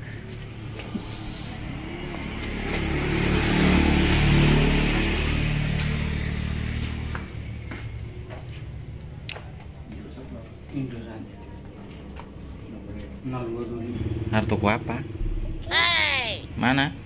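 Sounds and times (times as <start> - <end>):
vehicle driving past: 0.0 - 8.9, 12.3 - 17.0.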